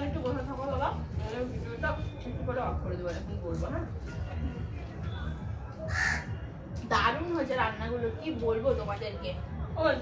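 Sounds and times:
crow cawing: 5.9s - 6.4s.

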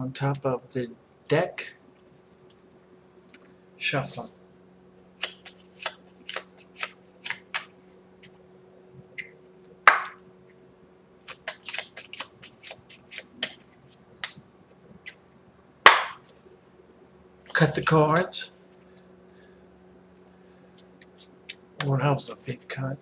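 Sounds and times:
cards slapping: 5.2s - 8.4s, 9.2s - 10.2s, 11.2s - 14.4s, 15.8s - 16.3s
playing cards shuffled by hand: 5.2s - 8.4s, 11.2s - 14.4s, 20.7s - 22.9s.

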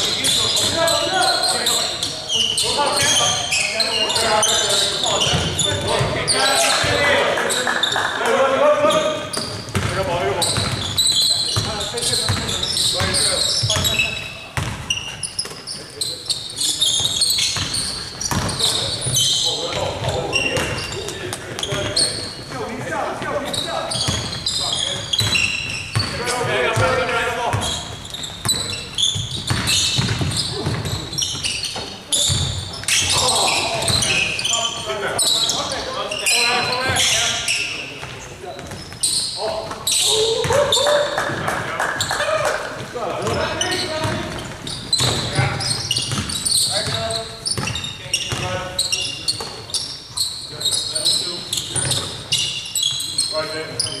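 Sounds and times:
players calling out: 0.0s - 54.0s
basketball bouncing on wooden floor: 9.3s - 11.0s, 11.6s - 14.0s, 14.6s - 14.9s, 17.0s - 18.7s, 25.2s - 26.2s, 26.8s - 32.6s, 44.0s - 48.5s.

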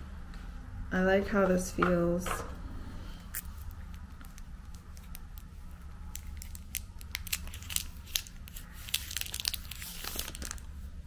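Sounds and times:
plastic packaging crinkling: 3.3s - 10.8s.

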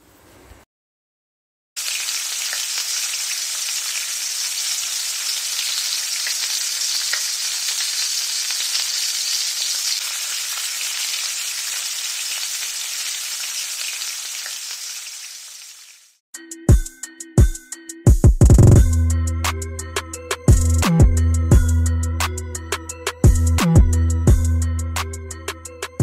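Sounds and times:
fish frying in oil: 1.8s - 16.2s.

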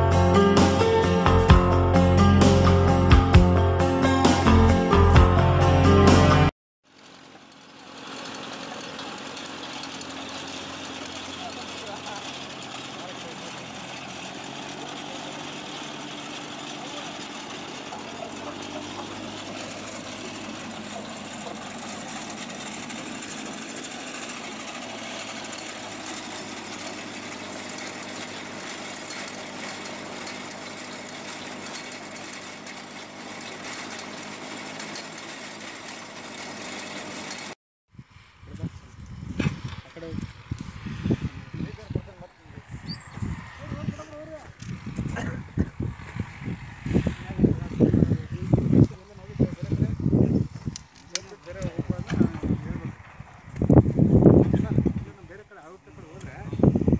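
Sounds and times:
indistinct voices talking: 10.5s - 26.0s, 41.5s - 45.8s.

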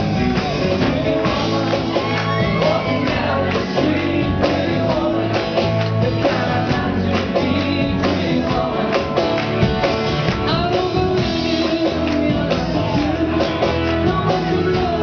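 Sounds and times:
man singing: 0.0s - 9.6s, 10.4s - 15.0s
rock band playing: 0.0s - 15.0s.

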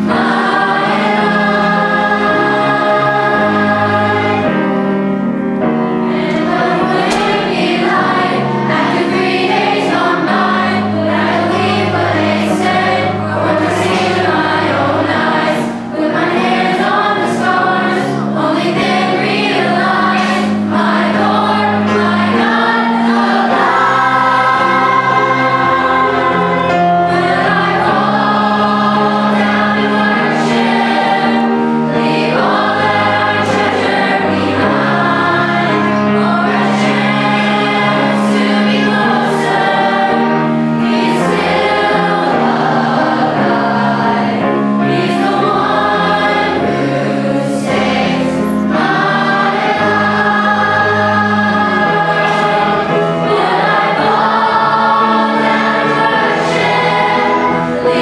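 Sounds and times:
children's choir singing: 0.0s - 58.0s
instrumental accompaniment: 0.0s - 58.0s.

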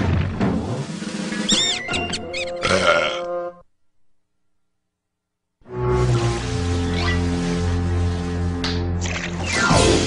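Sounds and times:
high squeaks: 1.5s - 2.7s.

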